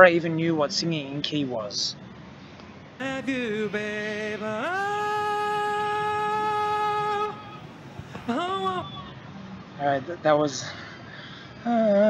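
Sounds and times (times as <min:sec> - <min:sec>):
young man singing: 0:03.0 - 0:08.9.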